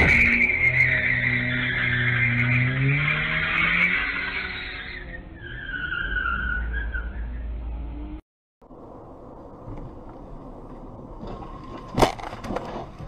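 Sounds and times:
car engine revving: 0:00.0 - 0:04.8
harsh screech: 0:00.0 - 0:07.7
wavering high squeal: 0:00.0 - 0:07.9.

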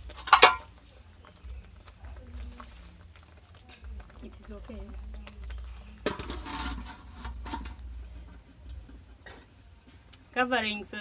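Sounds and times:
metal pot scraping and rattling: 0:00.0 - 0:10.1
metal pot knocking on saucepan: 0:00.2 - 0:00.7, 0:06.0 - 0:07.8.

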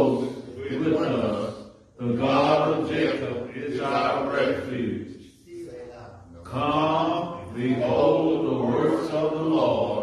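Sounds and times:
group reciting in unison: 0:00.0 - 0:10.0.

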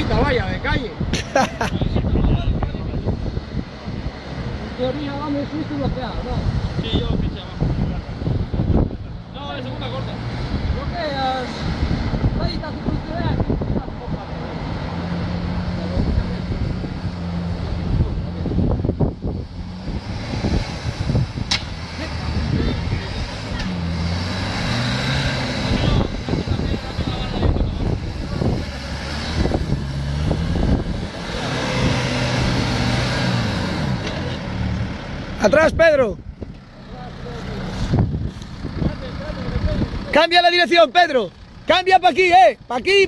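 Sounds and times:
vehicle engine revving: 0:02.1 - 0:43.0.

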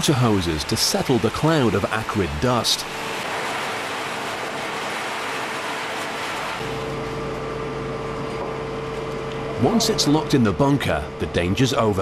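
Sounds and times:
water hose spraying hiss: 0:00.0 - 0:06.6
low machine hum with rumble: 0:00.1 - 0:12.0.

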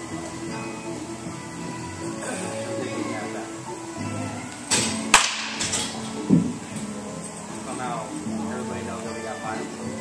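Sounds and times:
baseball bat hitting ball: 0:04.8 - 0:05.6.

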